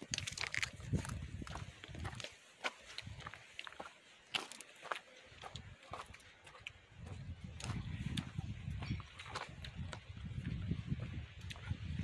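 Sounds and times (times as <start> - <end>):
apple crunching: 0.0 - 1.2
wet chewing: 0.0 - 3.0.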